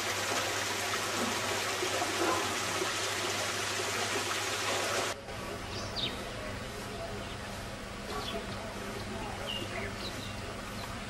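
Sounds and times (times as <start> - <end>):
water splashing down waterfall: 0.0 - 5.2
outdoor ambience: 0.0 - 11.0.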